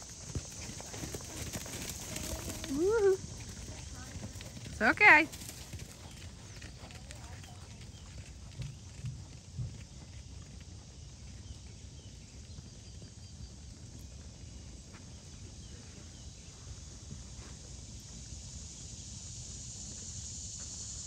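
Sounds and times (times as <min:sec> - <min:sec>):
horse hoofbeats on sand: 0:00.0 - 0:16.2.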